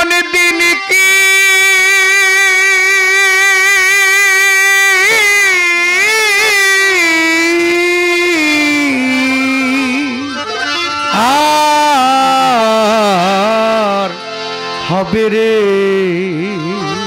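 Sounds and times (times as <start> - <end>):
man singing a long note: 0.0 - 10.5, 11.1 - 14.2.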